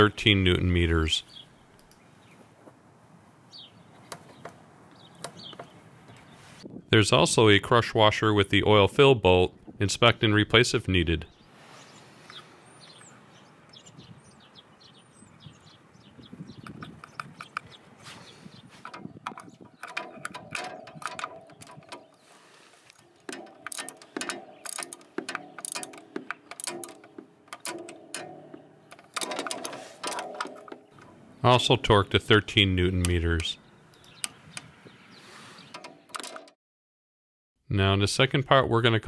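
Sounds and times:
socket ratchet clicking: 18.8 - 22.2, 23.2 - 30.9.

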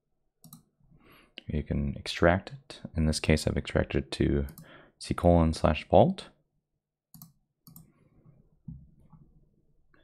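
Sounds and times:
faint computer mouse clicks: 7.1 - 7.9.

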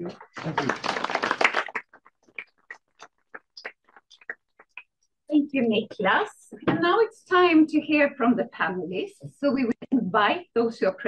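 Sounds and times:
audience applauding: 0.0 - 4.8.

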